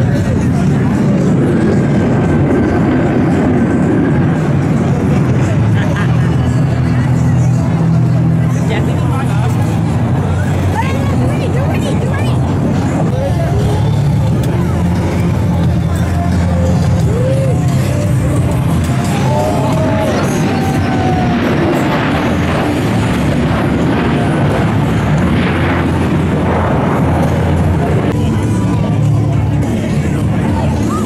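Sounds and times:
crowd voices: 0.0s - 31.0s
jet noise: 0.0s - 31.0s
music: 0.0s - 31.0s.

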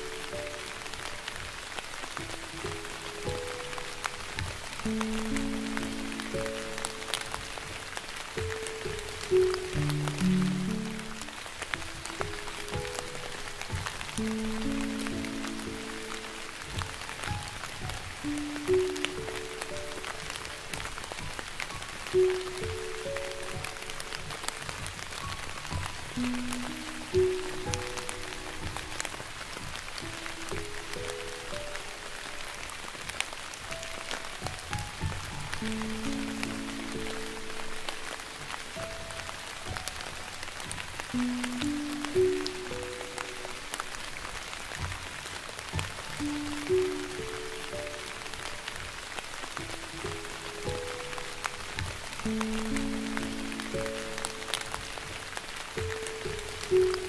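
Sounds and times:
slow gentle piano melody: 0.0s - 57.0s
soft rain patter: 0.0s - 57.0s.

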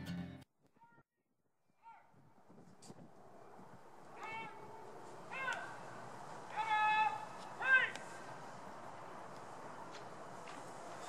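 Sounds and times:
faint outdoor noise: 1.6s - 11.0s.

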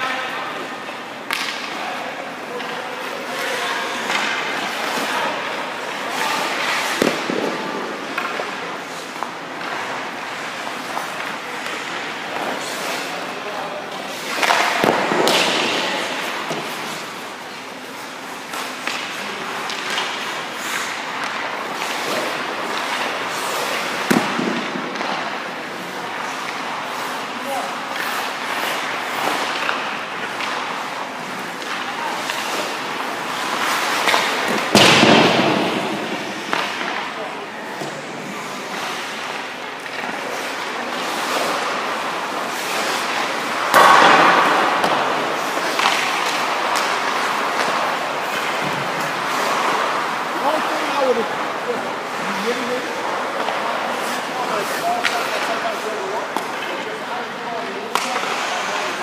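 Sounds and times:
skate blades scraping ice: 0.1s - 59.0s
stick and puck clicks: 57.9s - 58.6s.

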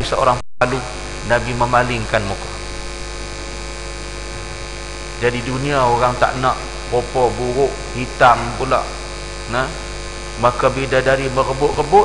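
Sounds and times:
electrical mains hum and buzz: 0.0s - 12.0s.

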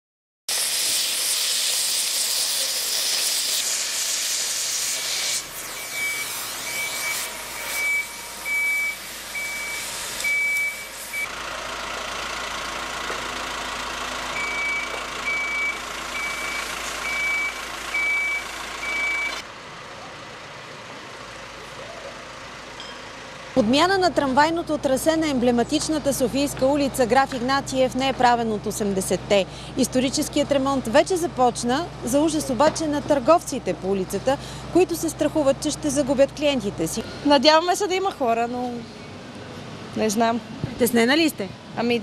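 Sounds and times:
cutting torch hissing through steel: 0.5s - 11.3s
street noise: 0.5s - 42.0s
diesel engine running: 0.8s - 42.0s
reversing alarm beeping: 5.5s - 11.3s, 14.3s - 19.4s.

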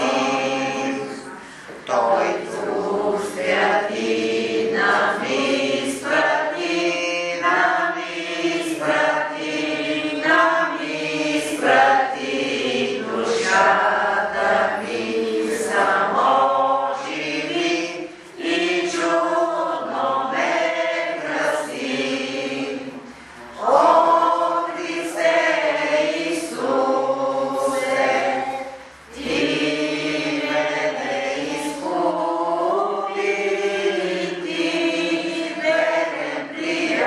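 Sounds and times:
group singing a hymn: 0.0s - 37.0s.

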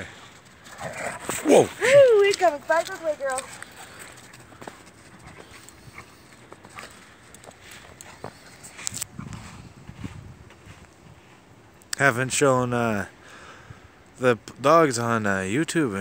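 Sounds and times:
footsteps crunching in snow: 0.0s - 11.6s.

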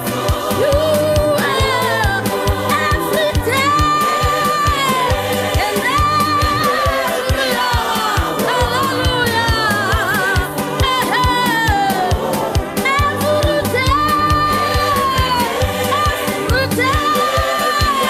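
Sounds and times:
group singing gospel song: 0.0s - 18.0s
steady beat: 0.0s - 18.0s.

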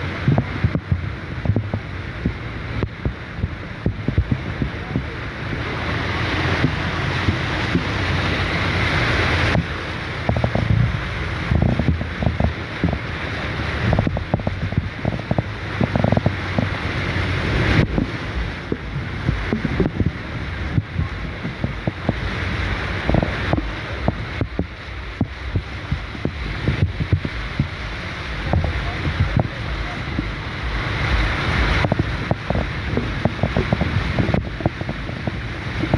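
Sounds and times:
low rumble: 0.0s - 35.9s
tyres splashing through floodwater: 0.0s - 35.9s
wind noise: 0.0s - 35.9s.

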